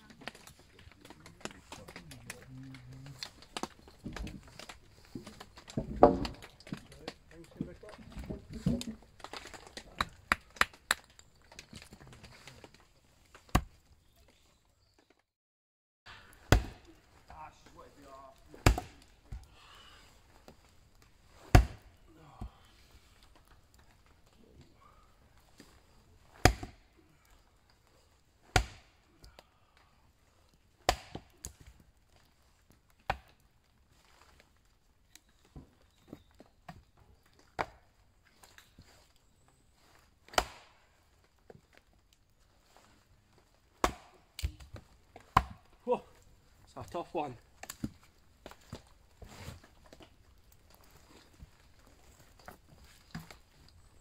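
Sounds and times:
axe splitting firewood: 0.0s - 14.2s, 16.1s - 29.4s, 30.5s - 35.2s, 36.0s - 39.1s, 39.8s - 54.0s.

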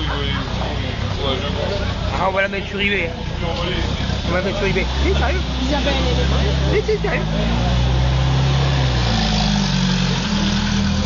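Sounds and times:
people talking: 0.0s - 8.0s
car engine idling: 0.0s - 11.0s.

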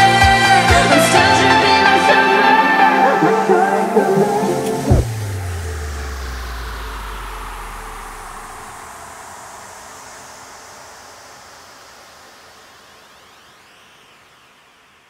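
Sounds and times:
downward-sweeping whoosh: 3.1s - 15.0s
deep falling boom: 4.9s - 9.2s.

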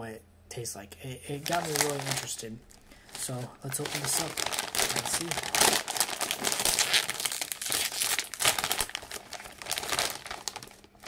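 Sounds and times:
plastic chip bag crinkling: 1.4s - 11.0s.

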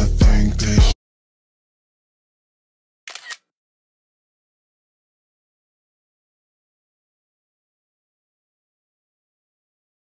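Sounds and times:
sharp double click: 3.1s - 3.4s.

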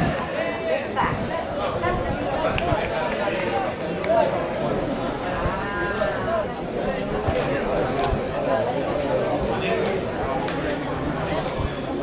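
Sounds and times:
voices calling across field: 0.0s - 12.0s.

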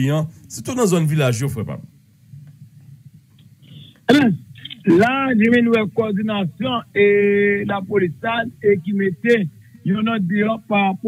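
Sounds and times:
man speaking: 0.0s - 1.9s, 4.1s - 11.0s
man clearing throat: 3.7s - 4.8s.

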